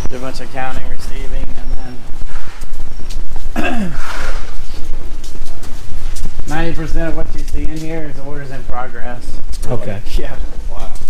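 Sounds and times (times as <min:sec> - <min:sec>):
footsteps on concrete floor: 0:00.0 - 0:11.0.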